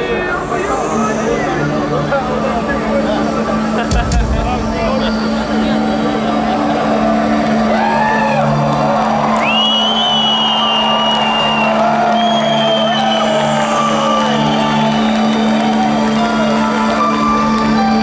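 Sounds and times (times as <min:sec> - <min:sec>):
low droning music over loudspeakers: 0:00.0 - 0:10.4
crowd whistling and whooping: 0:06.8 - 0:18.0.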